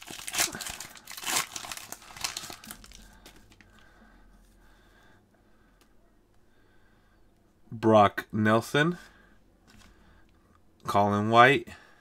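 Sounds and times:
card pack wrapper tearing and crinkling: 0.0s - 3.7s.

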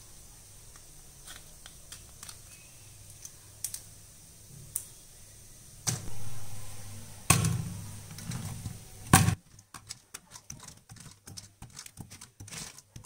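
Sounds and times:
low rumbling: 5.9s - 9.1s.

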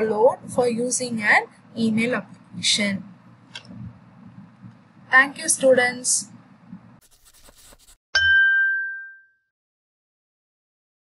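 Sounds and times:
bell-like ding: 8.2s - 9.5s.

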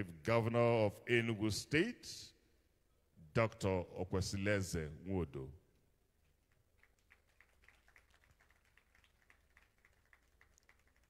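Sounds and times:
audience clapping faintly: 6.2s - 11.0s.

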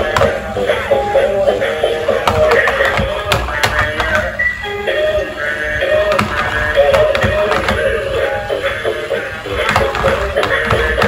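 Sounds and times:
toy playing song with singing: 0.0s - 11.0s.

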